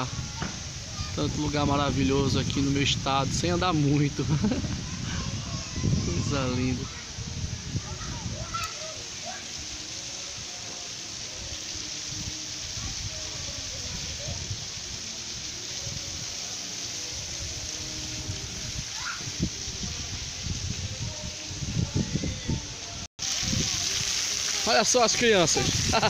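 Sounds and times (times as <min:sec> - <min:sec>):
wind gusts on microphone: 0:00.0 - 0:09.7, 0:11.4 - 0:16.4, 0:17.1 - 0:24.3, 0:25.1 - 0:26.0
water jets spraying: 0:00.0 - 0:26.0.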